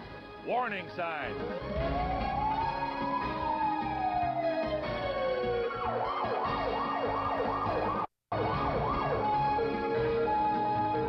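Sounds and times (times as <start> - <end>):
siren wailing: 1.4 - 11.0.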